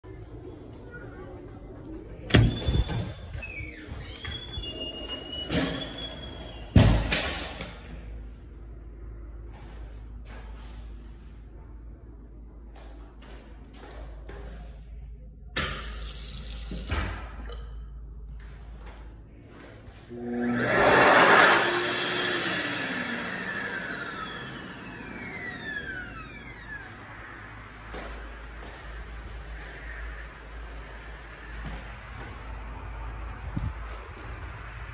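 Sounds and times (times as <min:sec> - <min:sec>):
hand dryer blowing: 0:20.2 - 0:27.3
motor winding down whine: 0:20.2 - 0:28.0.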